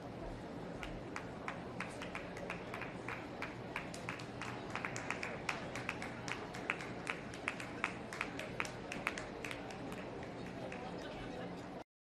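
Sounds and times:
murmur of crowd: 0:00.0 - 0:11.8.

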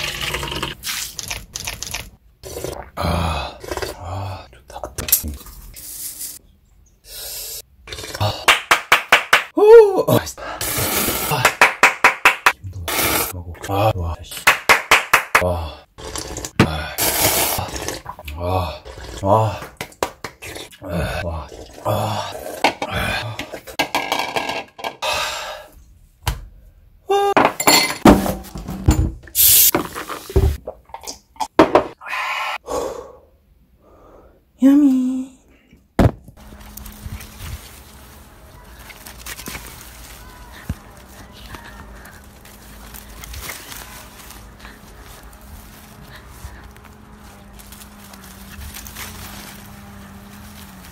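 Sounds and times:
vocal sounds: 0:15.4 - 0:19.8, 0:20.4 - 0:23.7
dishes and cutlery clinking: 0:27.5 - 0:28.1.

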